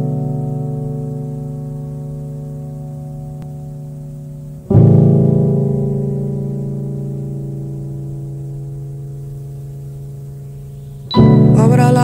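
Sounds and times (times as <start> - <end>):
sustained keyboard chord: 0.0 - 12.0.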